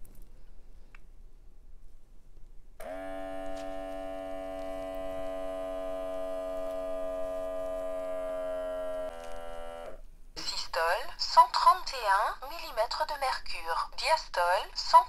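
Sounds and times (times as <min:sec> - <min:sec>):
electric air pump humming: 0:02.8 - 0:10.1.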